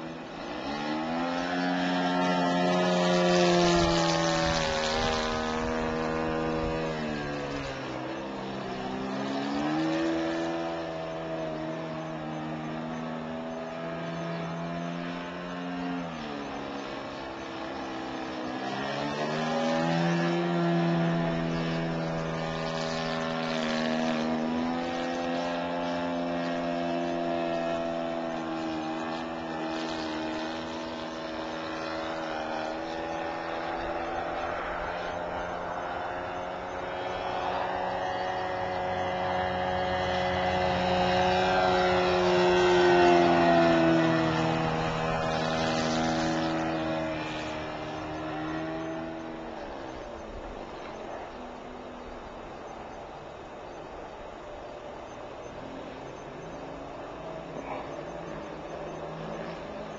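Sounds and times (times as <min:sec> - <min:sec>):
model airplane engine droning: 0:00.0 - 0:59.9.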